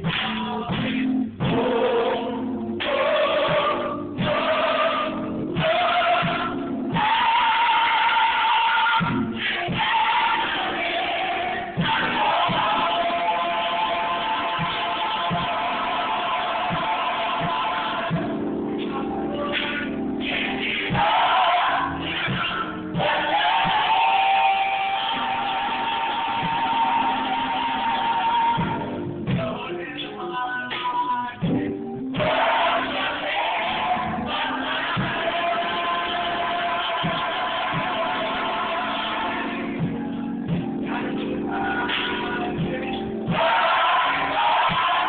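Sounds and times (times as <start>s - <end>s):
gospel choir holding high note: 0.0s - 29.8s, 32.0s - 45.0s
band accompaniment: 0.0s - 45.0s.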